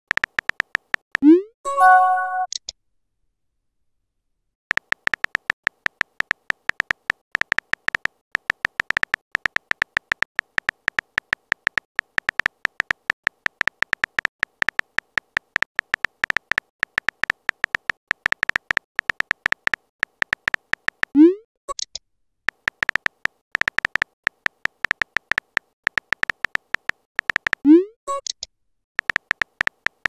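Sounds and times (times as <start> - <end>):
phone keyboard typing clicks: 0.1 - 1.0, 4.7 - 21.9, 22.5 - 28.4, 29.0 - 30.0.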